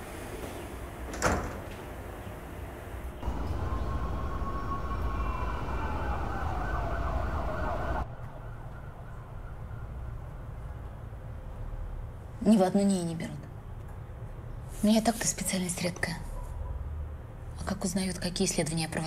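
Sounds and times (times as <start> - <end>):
city traffic rumble: 0.0 - 19.0
distant siren: 3.2 - 12.2.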